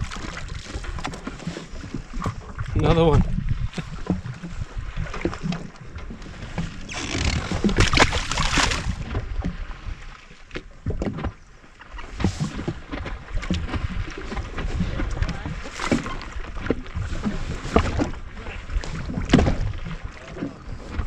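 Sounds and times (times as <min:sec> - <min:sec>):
wind buffeting microphone: 0:00.0 - 0:10.0
water lapping against hull: 0:00.0 - 0:21.0.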